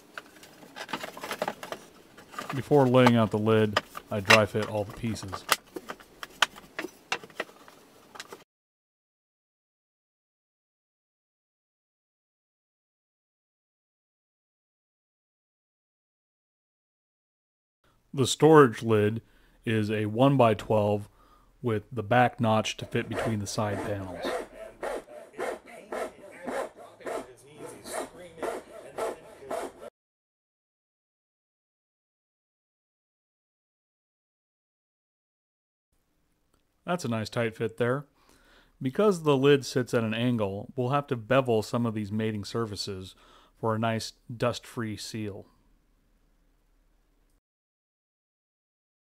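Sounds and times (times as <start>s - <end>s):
saw rasping through wood: 22.8s - 29.9s.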